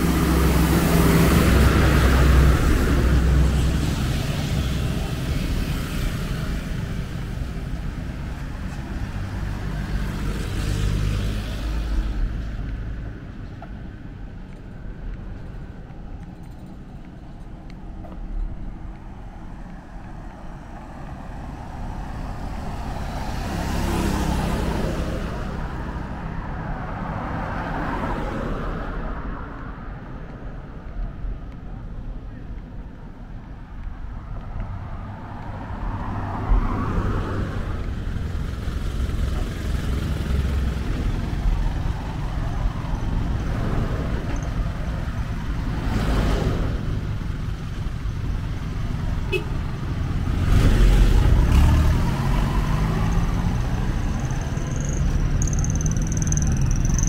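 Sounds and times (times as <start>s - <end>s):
cars passing: 0.0s - 57.0s
low traffic rumble: 0.0s - 57.0s.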